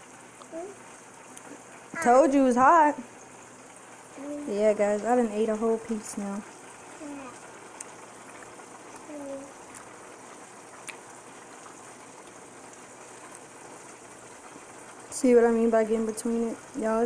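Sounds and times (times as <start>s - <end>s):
low hiss of food frying: 0.0s - 17.0s.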